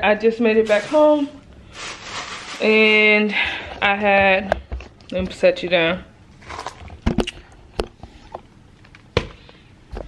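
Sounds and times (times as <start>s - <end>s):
soft rustling: 0.6s - 2.9s.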